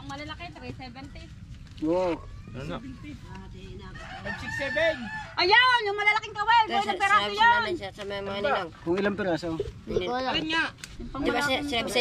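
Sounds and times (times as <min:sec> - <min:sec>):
rooster crowing: 0:03.8 - 0:05.8.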